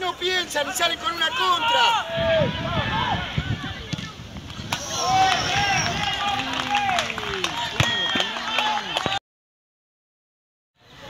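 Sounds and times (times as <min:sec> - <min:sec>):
outdoor noise: 0:00.0 - 0:09.2, 0:10.8 - 0:11.0
people shouting: 0:00.6 - 0:03.8, 0:04.7 - 0:09.2.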